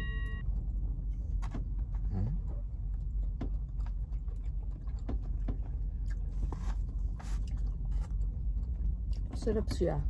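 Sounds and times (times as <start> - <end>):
steady low hum: 0.0 - 10.0
person chewing: 1.8 - 9.3.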